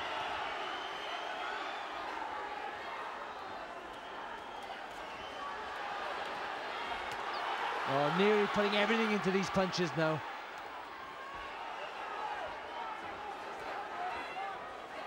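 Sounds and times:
crowd shouting and cheering: 0.0 - 15.0.

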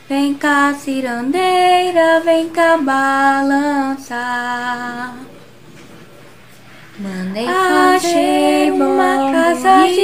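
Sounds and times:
woman singing unaccompanied: 0.1 - 5.3, 7.0 - 10.0.

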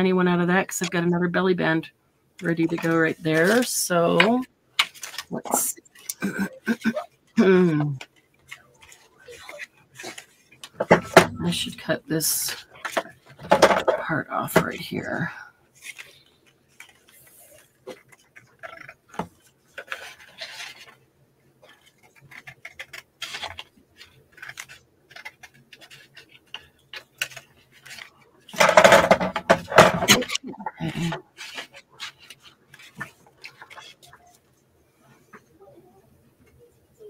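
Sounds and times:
paper rustling: 2.4 - 7.4, 8.0 - 11.6, 15.7 - 21.0, 21.6 - 34.6
scissors snipping paper: 22.0 - 28.1.

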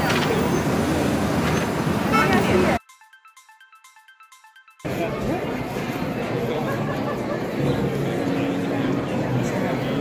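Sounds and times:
pedestrian chatter: 0.0 - 2.8, 4.8 - 10.0
road traffic: 0.0 - 2.8.

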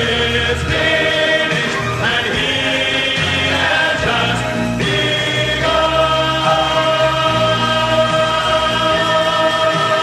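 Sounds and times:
male vocal group singing gospel: 0.0 - 10.0.

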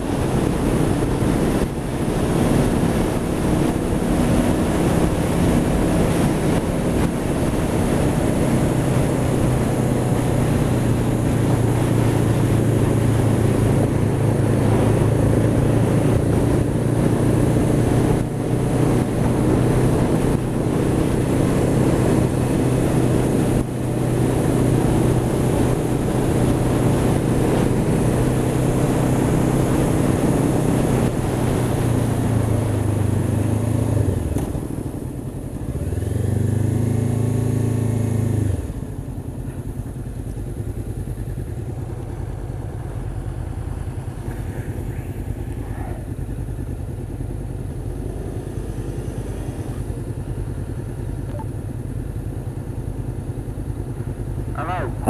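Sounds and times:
wind rushing over microphone: 0.0 - 36.0
motorcycle engine running: 0.0 - 55.0.

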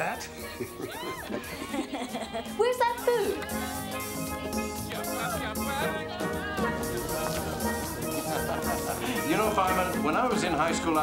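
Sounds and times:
carnival band music: 0.0 - 11.0
voices: 0.0 - 11.0.

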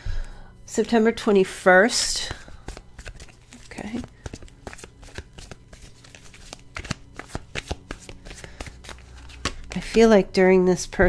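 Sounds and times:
cards being shuffled: 2.0 - 10.3.

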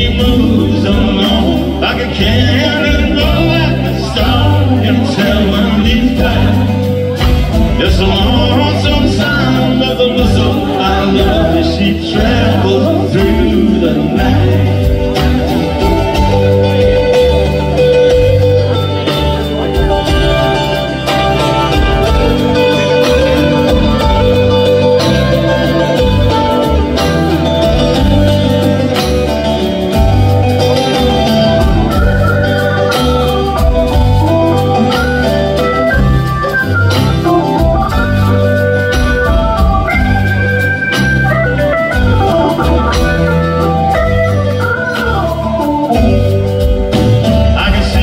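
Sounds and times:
drums: 0.0 - 48.0
hammond organ playing: 0.0 - 48.0
upright bass walking line: 0.0 - 48.0.

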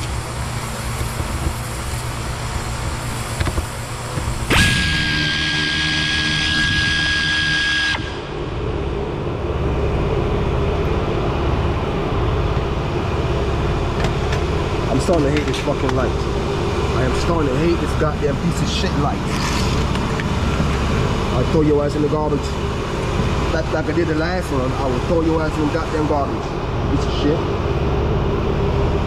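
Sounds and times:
low background rumble: 8.0 - 29.0.

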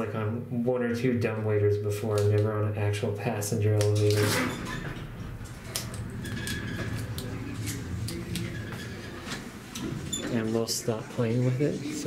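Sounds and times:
elevator hum: 4.8 - 10.3.

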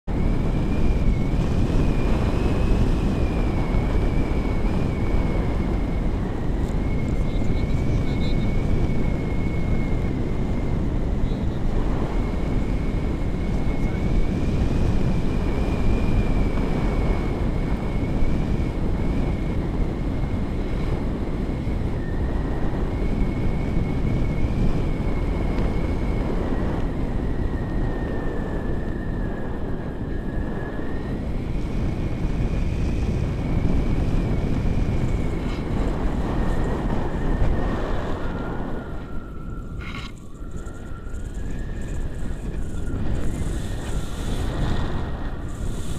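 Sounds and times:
wind rushing over microphone: 0.0 - 45.9
thin high wandering tone: 35.0 - 45.9.

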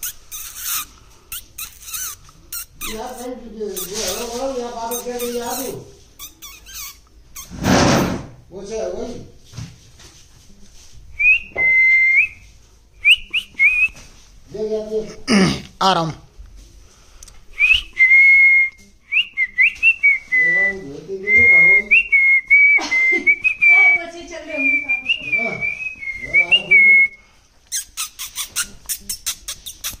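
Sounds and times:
whistling with chirps: 11.2 - 14.0, 17.6 - 27.2.

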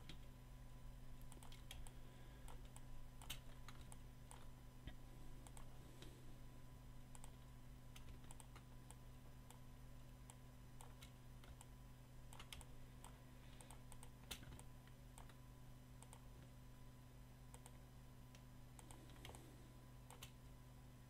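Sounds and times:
low steady hum: 0.0 - 21.0.

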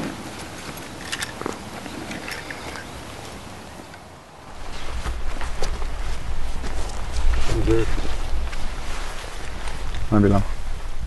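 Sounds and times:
rustles of people handling gear: 0.0 - 10.5
wind rumble on microphone: 4.4 - 11.0.

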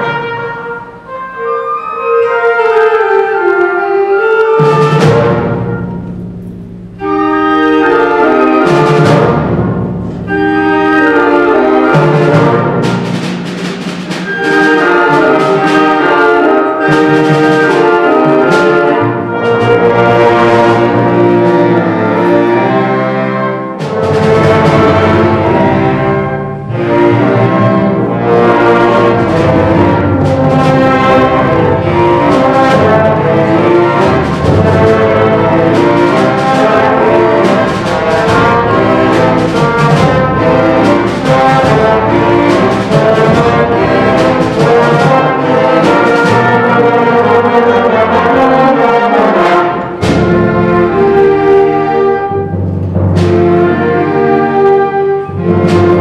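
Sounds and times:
concert band brass and woodwinds: 0.0 - 56.0
timpani: 0.0 - 56.0.

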